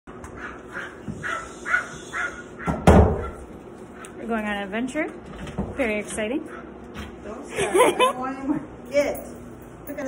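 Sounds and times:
small dog barking: 0:00.4 - 0:03.4.

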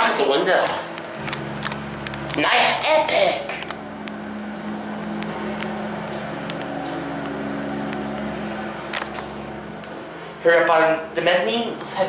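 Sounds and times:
elevator pump motor humming: 0:00.0 - 0:12.0.

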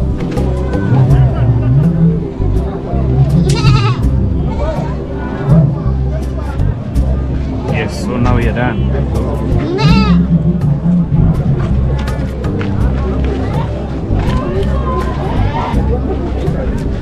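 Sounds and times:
background music: 0:00.0 - 0:17.0
voices: 0:00.0 - 0:17.0
goat bleating: 0:03.4 - 0:04.0, 0:09.6 - 0:10.2.

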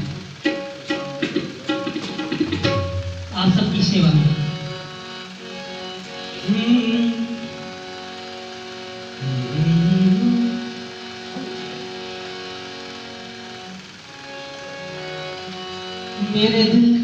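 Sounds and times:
harmonium reed chords: 0:00.0 - 0:17.0.

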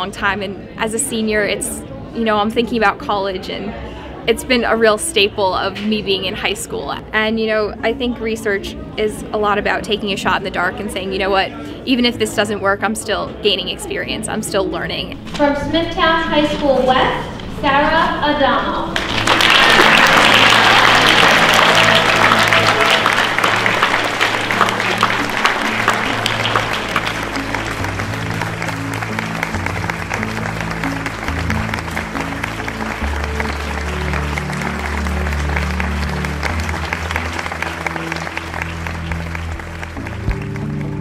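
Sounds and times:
background music with low notes: 0:00.0 - 0:41.0
audience applauding: 0:19.0 - 0:41.0.

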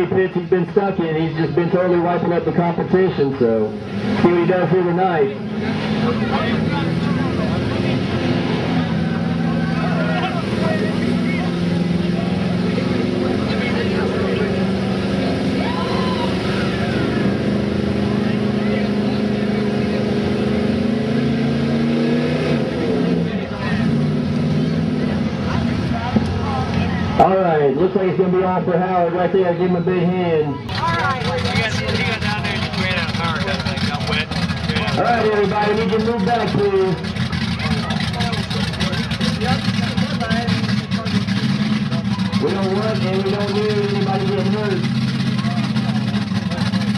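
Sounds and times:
faint crowd voices: 0:00.0 - 0:46.9
truck engine running under load: 0:00.0 - 0:46.9.

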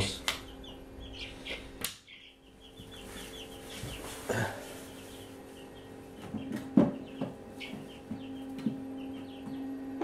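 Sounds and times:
bird chirping: 0:00.0 - 0:10.0
low electrical hum: 0:00.0 - 0:10.0.

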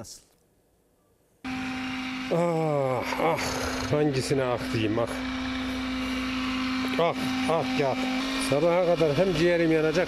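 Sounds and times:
vehicle engine humming: 0:01.5 - 0:10.0.

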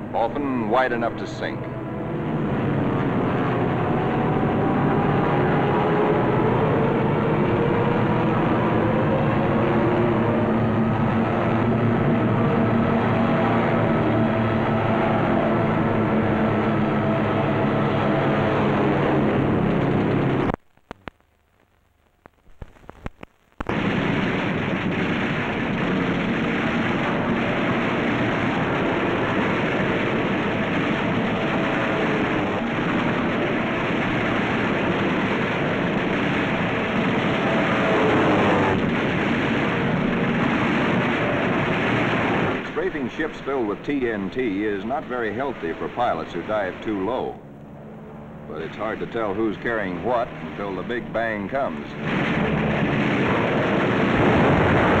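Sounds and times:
steady aircraft drone: 0:00.0 - 0:20.6, 0:23.7 - 0:55.0
explosions: 0:22.5 - 0:55.0
machine-gun fire: 0:23.6 - 0:47.4, 0:48.6 - 0:55.0.

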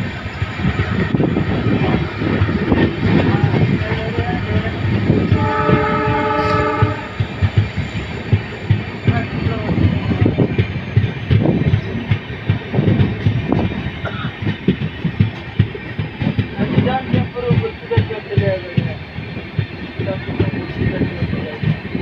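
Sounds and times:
clickety-clack of rail joints: 0:00.0 - 0:22.0
train wheels rolling on rails: 0:00.0 - 0:22.0
locomotive horn: 0:05.3 - 0:07.2.

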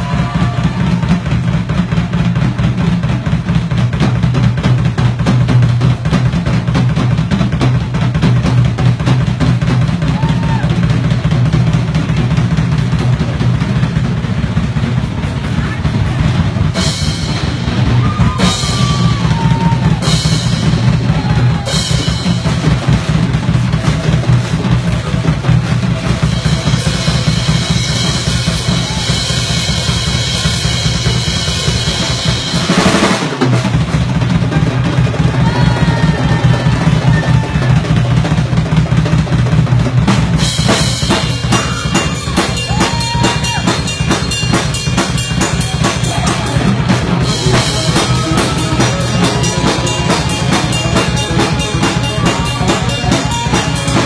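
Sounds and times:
fast bass drum pattern: 0:00.0 - 0:54.0
cymbal crashes: 0:40.6 - 0:54.0.

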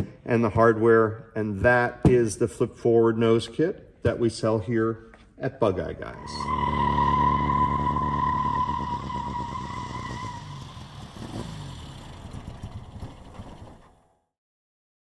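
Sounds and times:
steady high whine: 0:06.1 - 0:11.0
car driving past: 0:06.2 - 0:14.0.

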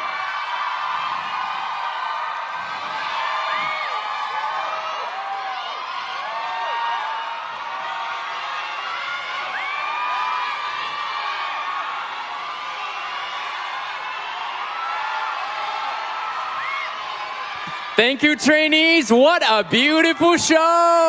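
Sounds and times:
audience cheering and screaming: 0:00.0 - 0:21.0.

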